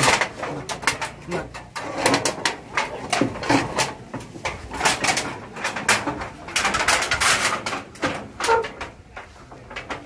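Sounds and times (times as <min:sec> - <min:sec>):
roofing sheet scraping on bamboo: 0:00.0 - 0:10.0.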